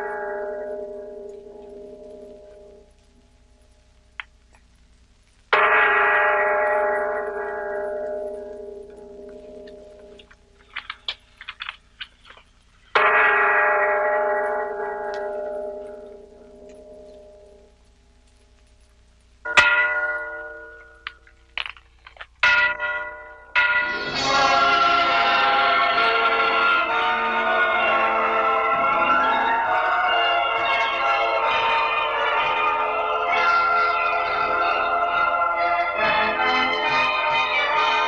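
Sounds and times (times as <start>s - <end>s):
church bell tolling: 0.0s - 3.0s, 5.5s - 10.4s, 12.9s - 17.7s, 19.5s - 21.3s, 22.4s - 38.0s.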